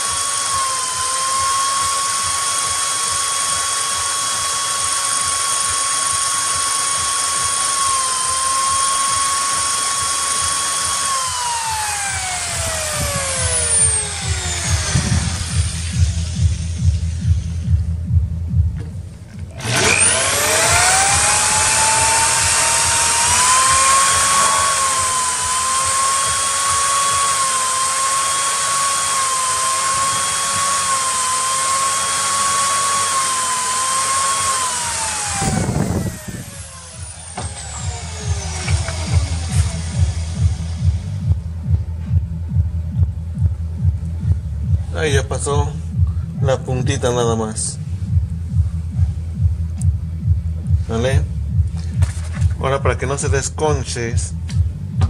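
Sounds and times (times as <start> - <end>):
power drill motor whine: 0.0 - 17.8, 19.4 - 41.6
low thumps: 11.8 - 27.4, 34.6 - 55.0.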